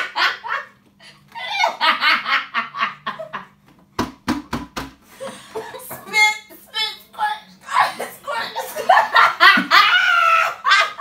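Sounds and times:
woman laughing hard: 0:00.0 - 0:03.5, 0:07.7 - 0:11.0.

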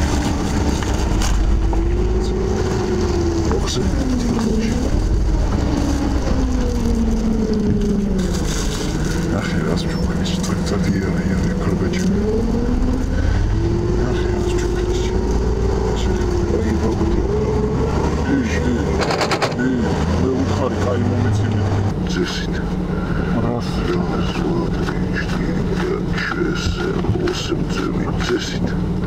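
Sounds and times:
car engine running: 0:00.0 - 0:29.0
steady low rumble: 0:00.0 - 0:29.0.

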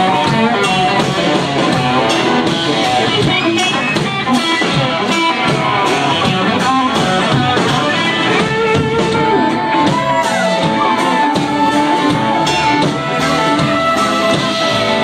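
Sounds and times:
drum kit beat: 0:00.0 - 0:15.0
electric guitar: 0:00.0 - 0:15.0
fiddle: 0:00.0 - 0:15.0.

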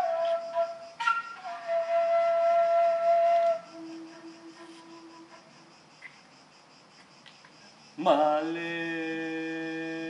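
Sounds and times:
flute notes: 0:00.0 - 0:05.6
faint high-pitched buzz: 0:00.0 - 0:10.0.

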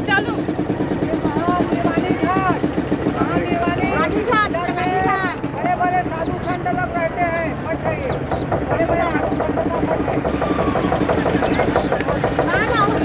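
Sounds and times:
motorboat engine running: 0:00.0 - 0:13.0
people talking: 0:01.0 - 0:13.0.

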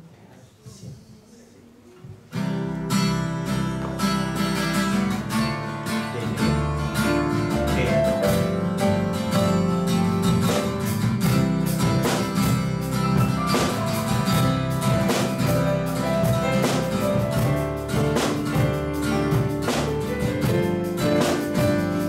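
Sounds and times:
acoustic guitar strumming: 0:02.3 - 0:22.0.

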